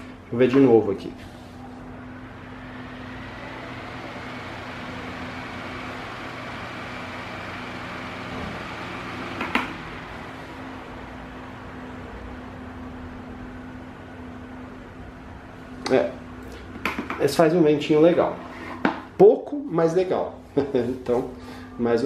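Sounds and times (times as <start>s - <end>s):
low motor hum: 1.3s - 16.8s.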